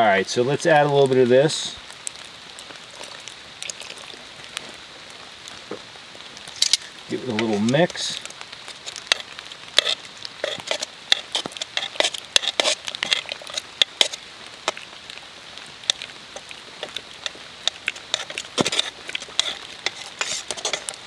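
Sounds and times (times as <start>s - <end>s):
soup squelching: 1.9s - 5.6s, 6.3s - 21.0s
metal spoon scraping a pot: 8.8s - 14.8s, 15.8s - 21.0s.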